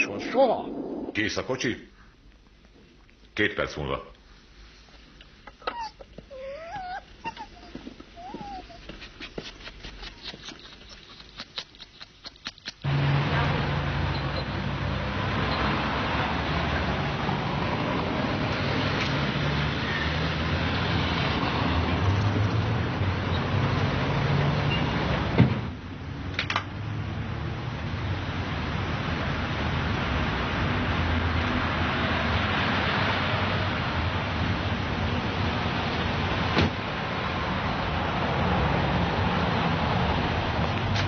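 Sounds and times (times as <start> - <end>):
car engine and road noise: 12.8 - 41.0.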